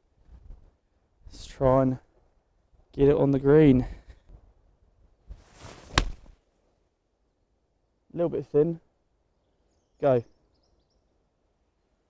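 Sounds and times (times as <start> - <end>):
golf club swing whoosh: 5.3 - 6.3.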